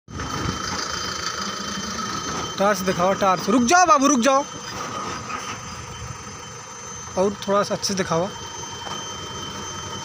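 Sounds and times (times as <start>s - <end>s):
diesel truck engine idling: 0.1s - 10.0s
high-pitched whine: 0.1s - 10.0s.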